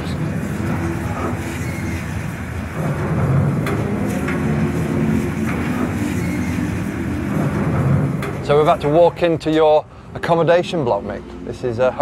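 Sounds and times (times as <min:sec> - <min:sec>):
metallic clanks: 0:00.0 - 0:09.6
heavy machinery rumbling: 0:00.0 - 0:12.0.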